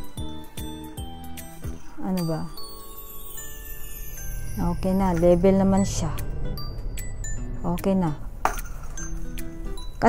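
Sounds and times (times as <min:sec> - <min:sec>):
background music: 0:00.0 - 0:10.0
small metal bells clinking: 0:01.4 - 0:07.7.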